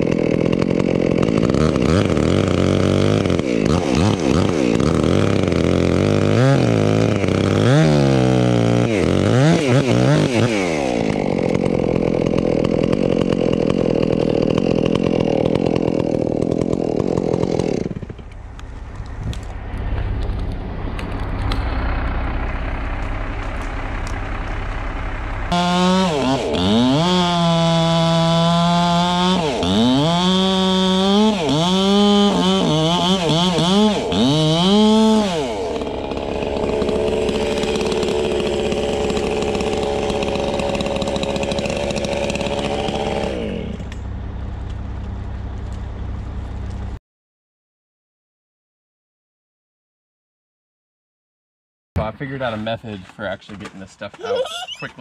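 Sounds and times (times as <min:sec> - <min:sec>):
chainsaw revving: 0:00.0 - 0:18.6, 0:25.5 - 0:44.0.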